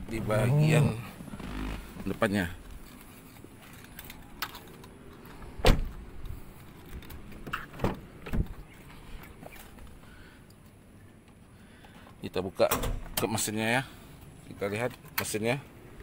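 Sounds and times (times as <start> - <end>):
door and latch clunks: 5.6 - 6.0, 7.4 - 8.6, 12.6 - 13.3
heavy car door shutting: 5.6 - 6.0, 7.4 - 8.7.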